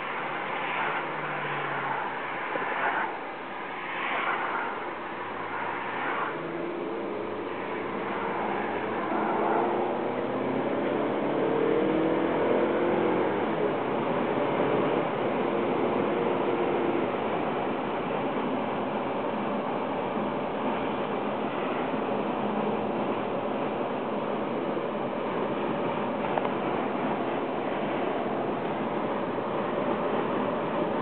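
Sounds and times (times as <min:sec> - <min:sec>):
road and engine noise in car: 0:00.0 - 0:31.0.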